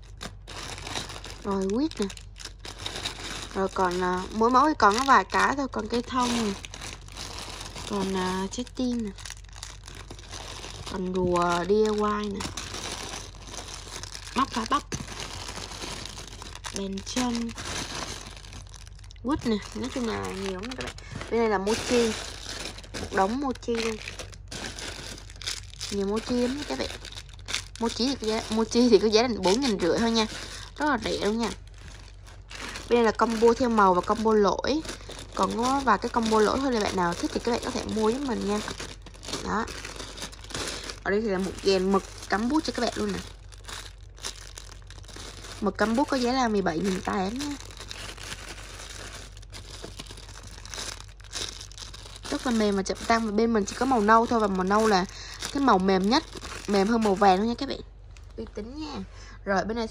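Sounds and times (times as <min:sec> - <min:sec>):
plastic bags crinkling: 0:00.0 - 0:58.4.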